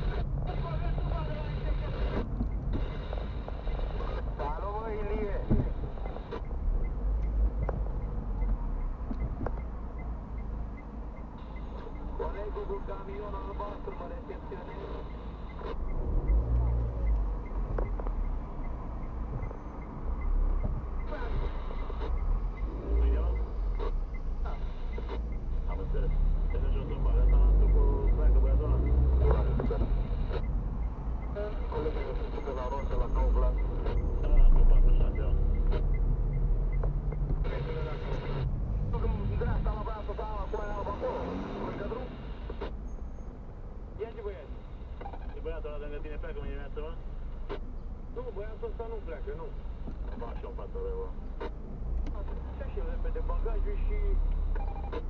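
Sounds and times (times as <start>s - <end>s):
people talking: 0.0s - 2.3s, 3.6s - 5.8s, 11.8s - 15.2s, 21.1s - 22.1s, 22.8s - 30.4s, 31.3s - 35.8s, 37.4s - 42.2s, 44.0s - 44.6s, 45.3s - 47.0s, 48.2s - 51.2s, 52.1s - 54.2s
car engine and road rumble: 0.0s - 55.0s.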